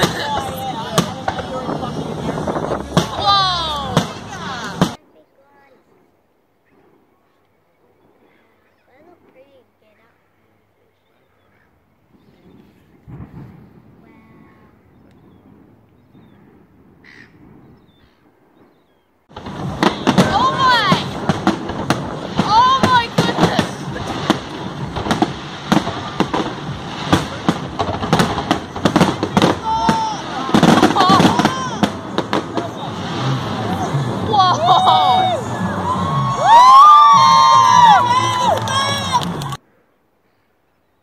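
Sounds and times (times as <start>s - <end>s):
fireworks bangs and crackles: 0.0s - 5.0s, 12.1s - 39.6s
onlookers' voices: 0.0s - 15.4s, 19.3s - 39.6s.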